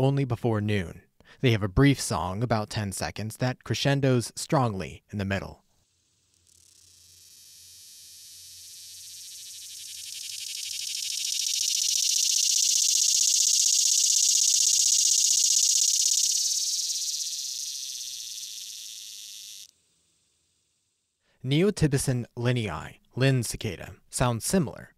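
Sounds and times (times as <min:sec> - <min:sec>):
cicada singing high-pitched: 0:06.3 - 0:20.8.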